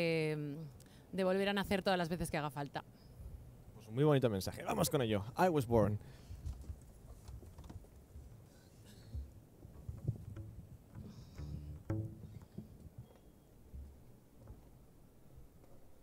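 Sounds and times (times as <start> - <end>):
footsteps on wooden deck: 6.2 - 15.1.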